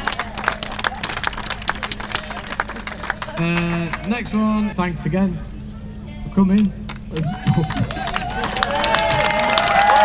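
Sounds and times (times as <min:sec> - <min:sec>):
crowd applauding: 0:00.0 - 0:04.5, 0:07.2 - 0:10.0
steady low hum: 0:00.0 - 0:10.0.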